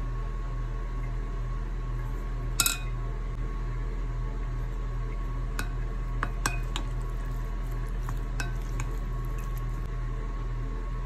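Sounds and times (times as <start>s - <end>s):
steady low hum: 0.0s - 11.0s
wooden spoon stirring meat: 6.2s - 9.9s.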